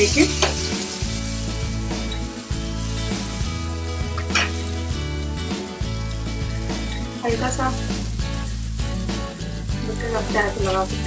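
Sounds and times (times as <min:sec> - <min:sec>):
pan scrape or clink: 0:00.0 - 0:03.5, 0:04.1 - 0:04.9
background music: 0:00.0 - 0:11.0
bread sizzling in butter: 0:00.0 - 0:11.0.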